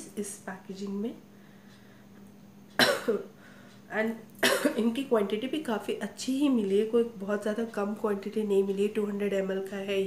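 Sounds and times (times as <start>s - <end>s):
woman coughing: 2.8s - 3.3s, 4.4s - 4.9s.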